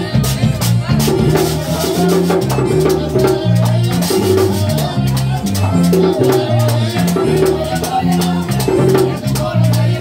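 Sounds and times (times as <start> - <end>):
button accordion: 0.0 - 10.0
drum: 0.0 - 10.0
low bass notes: 0.0 - 10.0
rattling percussion: 0.0 - 10.0.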